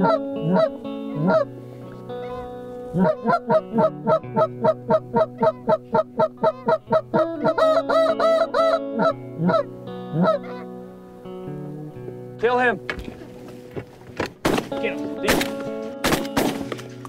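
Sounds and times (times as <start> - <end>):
goose call honks: 0.0 - 1.5, 2.2 - 10.7
background music with steady tones: 0.0 - 17.0.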